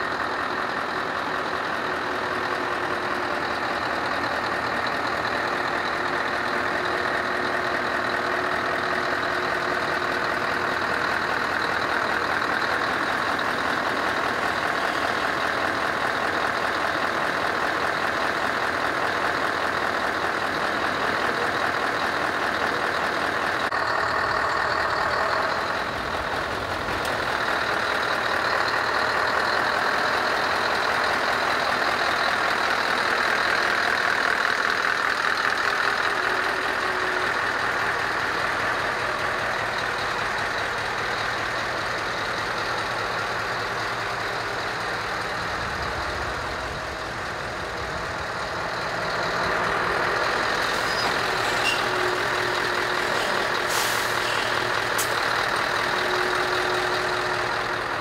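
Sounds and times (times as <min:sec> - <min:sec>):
truck diesel engine running: 0:00.0 - 0:58.0.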